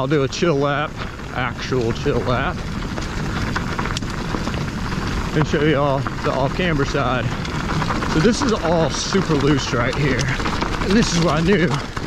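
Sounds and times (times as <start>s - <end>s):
bike tyres crackling over dirt: 0.0s - 12.0s
wind noise on microphone: 0.0s - 12.0s.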